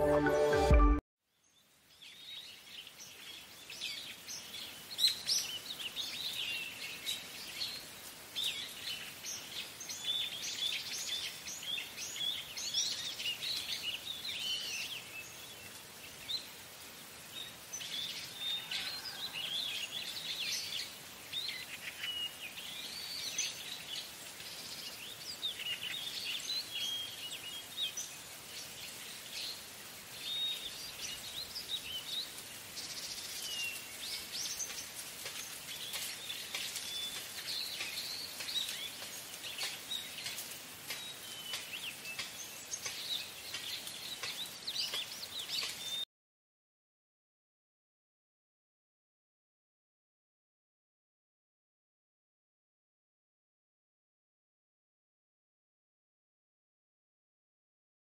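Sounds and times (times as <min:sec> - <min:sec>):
birds chirping: 0:17.2 - 0:46.0.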